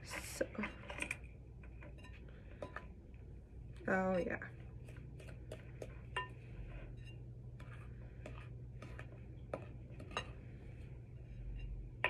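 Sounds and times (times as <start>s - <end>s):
utensil scraping slime in bowl: 3.8s - 11.8s.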